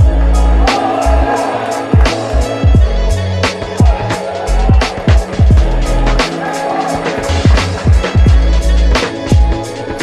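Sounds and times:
held bass notes: 0:00.0 - 0:01.3, 0:01.9 - 0:04.8.

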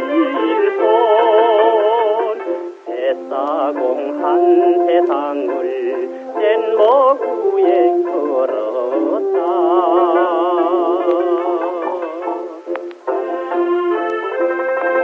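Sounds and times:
band accompaniment: 0:00.0 - 0:15.0
man singing with vibrato: 0:00.0 - 0:15.0.

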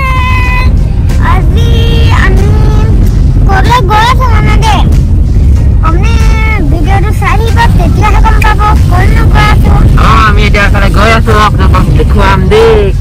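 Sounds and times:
road and wind noise in car: 0:00.0 - 0:13.0
boys talking and calling out: 0:05.7 - 0:10.1.

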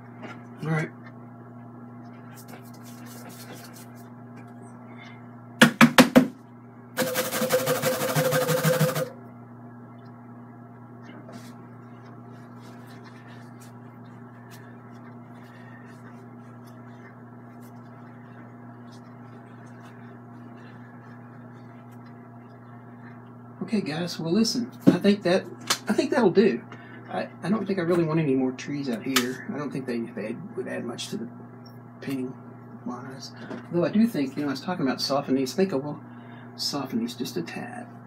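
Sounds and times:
low electrical hum: 0:00.0 - 0:38.0
sharp knocks: 0:05.6 - 0:06.4.

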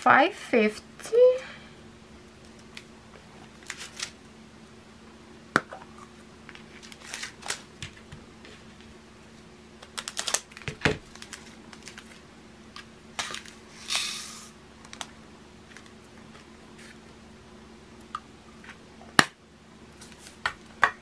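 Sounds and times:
plastic bags crinkling: 0:09.8 - 0:12.2.

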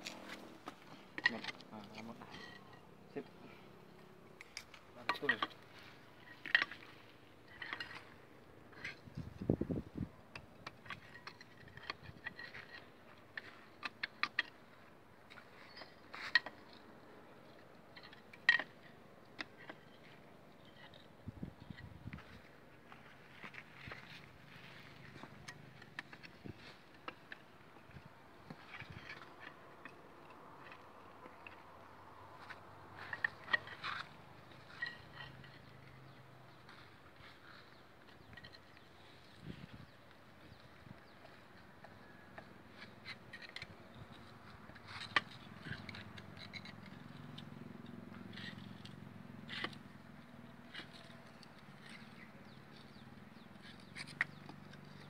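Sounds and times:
hand tools clinking on steel: 0:41.9 - 0:55.0.

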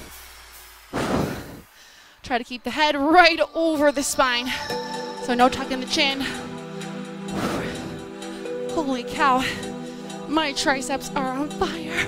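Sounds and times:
woman exhaling hard: 0:01.0 - 0:02.0, 0:07.3 - 0:08.0.

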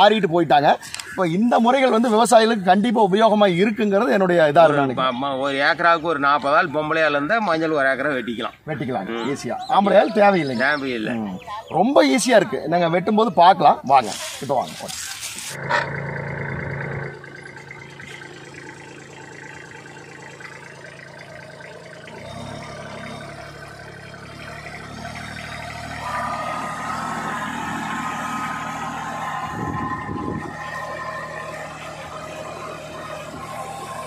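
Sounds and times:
tractor diesel engine under load: 0:00.0 - 0:34.0.

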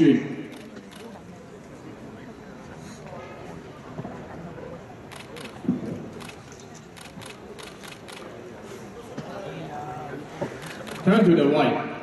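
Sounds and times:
audience chatter: 0:00.0 - 0:12.0
camera shutter clicks: 0:05.1 - 0:05.6, 0:06.2 - 0:08.3, 0:10.6 - 0:11.1.

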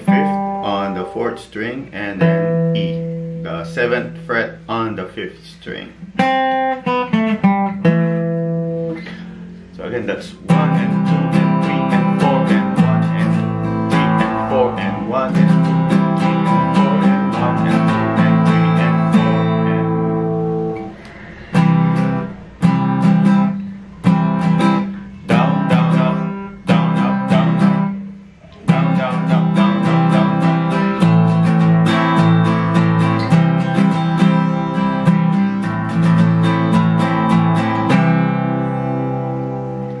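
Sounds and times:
acoustic guitar strumming: 0:00.0 - 0:40.0.

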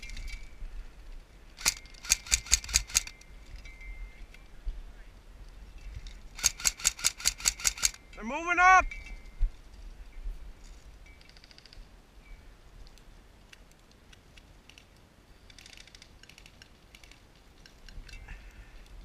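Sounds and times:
person shouting: 0:08.2 - 0:08.9.

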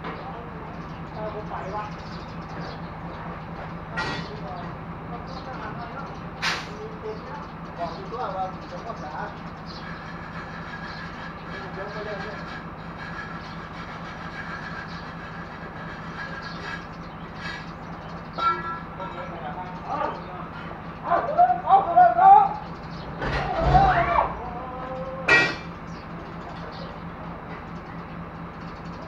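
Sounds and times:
metal clanks and knocks: 0:02.5 - 0:04.8, 0:06.4 - 0:06.9, 0:22.9 - 0:24.5, 0:25.2 - 0:27.9.

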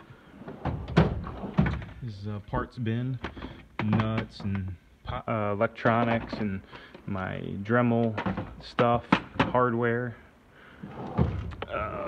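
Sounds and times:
metal drawer sliding shut: 0:00.4 - 0:02.0, 0:10.8 - 0:12.0
drawer knocking open: 0:00.5 - 0:02.0, 0:10.9 - 0:11.7.

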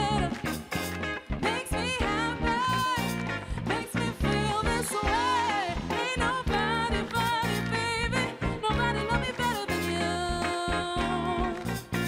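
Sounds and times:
woman singing: 0:00.0 - 0:00.6, 0:01.4 - 0:12.0
swing band music: 0:00.0 - 0:12.0.

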